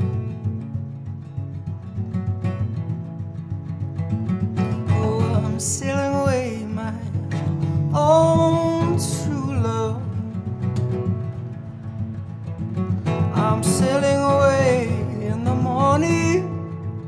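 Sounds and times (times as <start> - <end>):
acoustic guitar strumming: 0.0 - 17.0.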